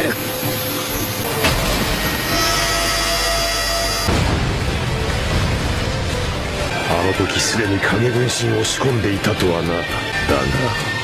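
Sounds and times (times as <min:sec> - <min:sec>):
sharp hit: 0:01.3 - 0:06.9
heavy low rumble: 0:04.1 - 0:08.0.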